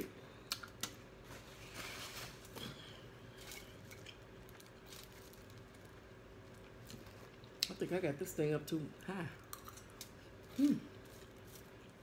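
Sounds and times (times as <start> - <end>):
chewing fried chicken: 3.5 - 7.8.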